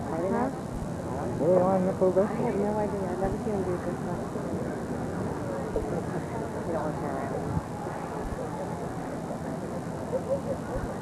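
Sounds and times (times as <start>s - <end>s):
outdoor background noise: 0.0s - 11.0s
faint spectator voices: 2.3s - 11.0s.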